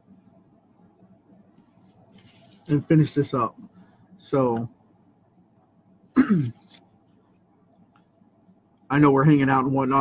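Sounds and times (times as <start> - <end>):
man clearing his throat: 6.2 - 6.6.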